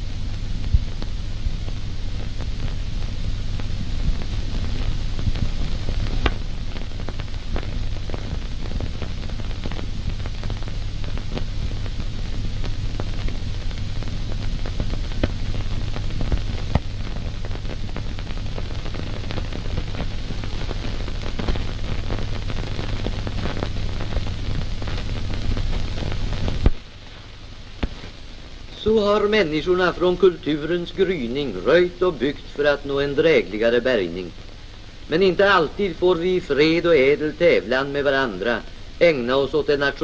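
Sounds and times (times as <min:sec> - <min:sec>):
crackles and pops: 0:00.0 - 0:40.0
film soundtrack hiss and hum: 0:00.0 - 0:40.0.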